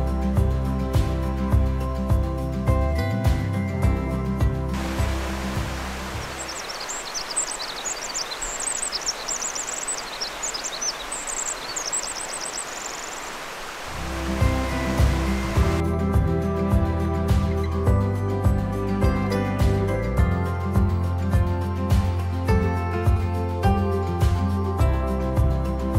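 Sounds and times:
background music: 0.0s - 6.9s, 13.9s - 25.9s
creek rushing: 4.8s - 15.8s
wren singing trill: 4.8s - 15.8s.

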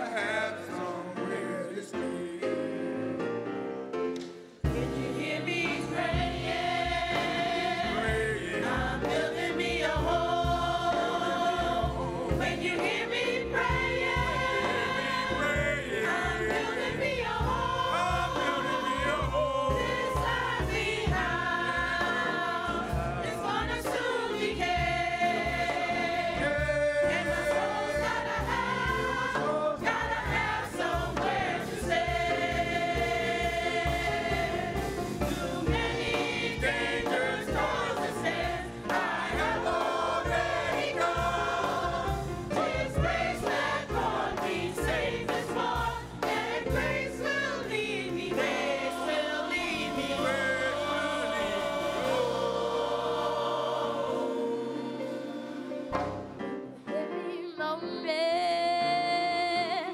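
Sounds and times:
gospel choir singing: 0.0s - 58.0s.

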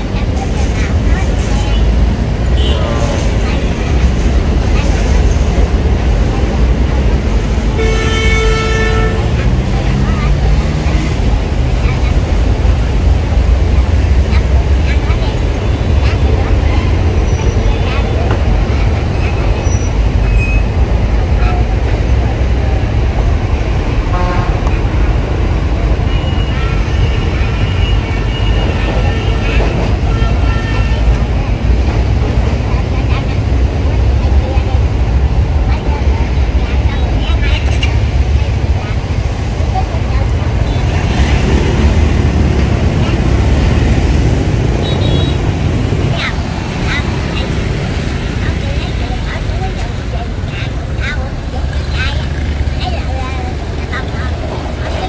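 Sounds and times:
motorbike engines rumbling: 0.0s - 55.0s
horns tooting: 1.0s - 12.5s, 13.6s - 32.9s, 36.8s - 55.0s.

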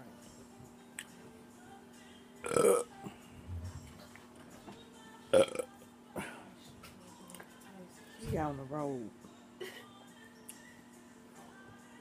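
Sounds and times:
woman burping: 2.4s - 2.9s, 5.3s - 5.7s.

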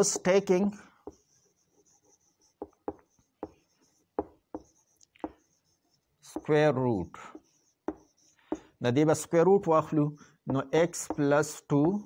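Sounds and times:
marker sliding on whiteboard: 1.0s - 6.6s, 7.2s - 8.8s
marker tip taps and squeaks: 2.5s - 5.6s, 7.8s - 8.7s.

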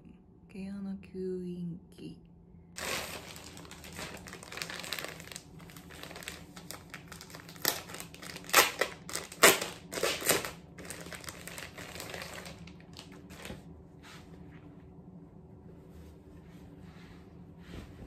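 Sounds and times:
plastic packaging crinkling: 2.8s - 13.6s.

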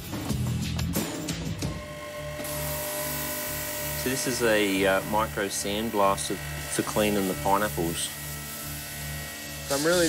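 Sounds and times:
sandblaster hissing: 1.7s - 10.0s.

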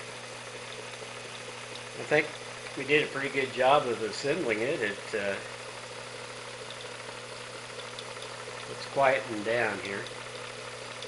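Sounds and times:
model engine idling: 1.9s - 5.6s.

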